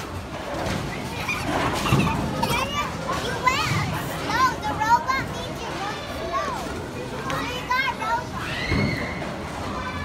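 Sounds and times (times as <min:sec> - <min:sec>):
young children calling and chattering: 0:00.0 - 0:10.0.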